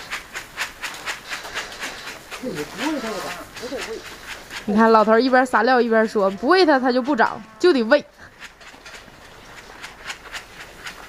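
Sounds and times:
feed pellets pouring from metal bucket: 0.0s - 5.8s.

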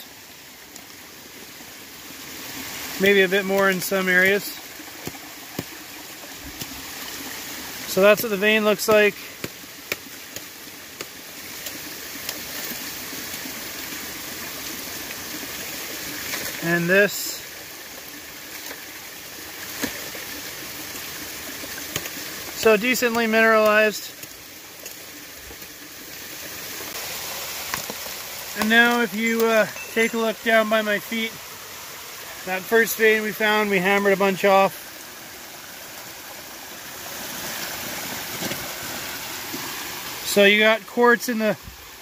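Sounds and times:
creek water running over rocks: 0.0s - 42.0s.

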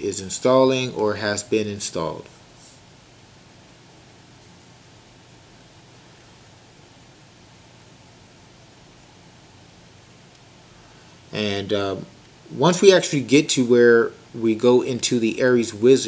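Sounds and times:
room tone hiss: 0.0s - 16.0s.

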